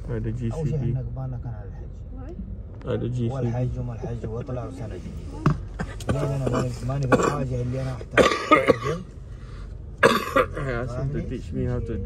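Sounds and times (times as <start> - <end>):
person coughing: 5.8 - 7.5, 8.2 - 9.1, 10.0 - 10.7.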